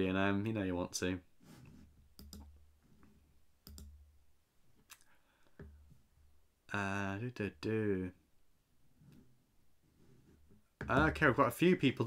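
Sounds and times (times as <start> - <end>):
computer mouse clicks: 2.2 - 2.5, 3.6 - 4.0.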